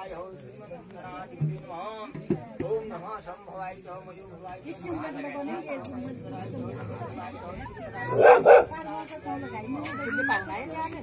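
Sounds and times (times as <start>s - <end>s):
faint background voices: 0.0s - 11.0s
dog barking: 8.1s - 8.8s.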